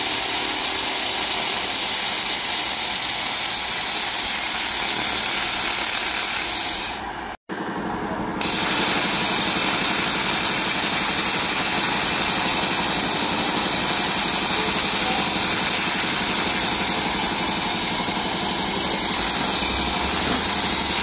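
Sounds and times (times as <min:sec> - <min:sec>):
laser cleaner hissing buzz: 0:01.8 - 0:07.0, 0:08.4 - 0:21.0.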